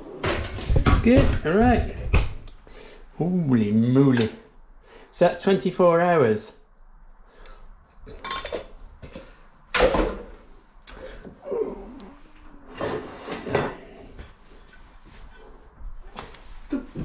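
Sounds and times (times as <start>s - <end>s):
cutlery and containers clinking: 8.0s - 10.0s.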